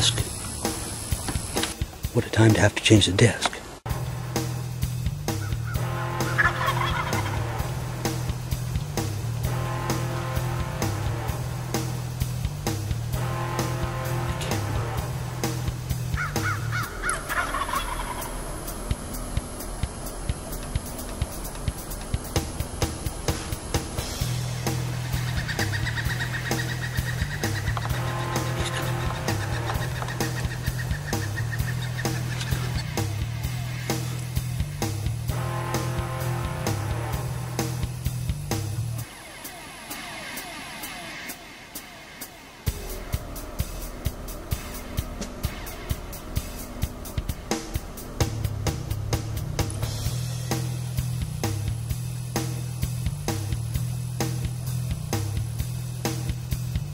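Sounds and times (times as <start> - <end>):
music with low beat: 3.9 - 56.9
turkey gobbling: 5.3 - 7.7, 16.2 - 18.6, 24.6 - 33.0.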